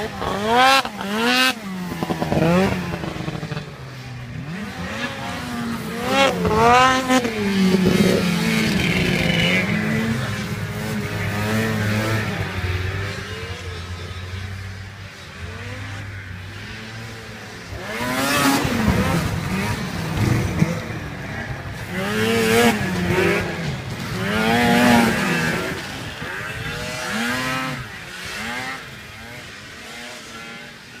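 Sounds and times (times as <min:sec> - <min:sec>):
snowmobile engine revving: 0:00.0 - 0:31.0.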